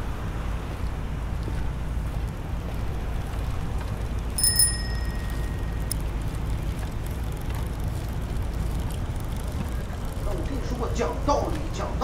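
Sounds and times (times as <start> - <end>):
low rumble of city traffic: 0.0 - 12.0
bright bell ding: 4.4 - 5.9.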